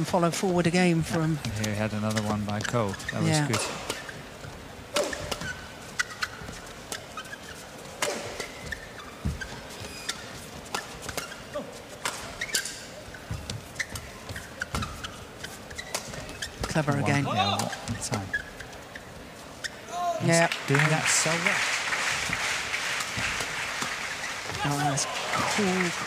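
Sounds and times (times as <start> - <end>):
shoes squeaking on floor: 0.0 - 20.4, 23.1 - 26.0
racket hitting shuttlecock: 4.9 - 7.0, 8.0 - 9.4.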